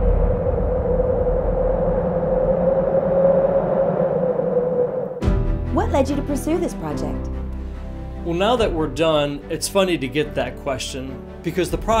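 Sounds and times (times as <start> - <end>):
low rumble: 0.0 - 7.6.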